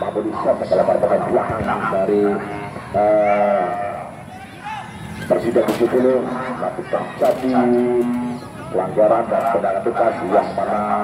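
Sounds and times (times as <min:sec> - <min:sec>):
background noise: 0:00.0 - 0:11.0
man's drawn-out voice: 0:00.0 - 0:11.0.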